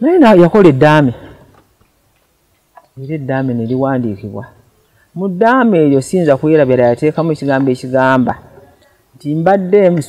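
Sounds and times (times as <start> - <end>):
person speaking: 0.0 - 1.7, 2.8 - 10.0.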